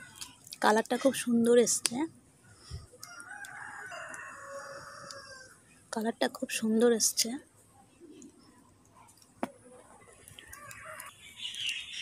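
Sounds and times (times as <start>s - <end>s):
rooster crowing: 3.0s - 5.6s, 10.4s - 11.1s.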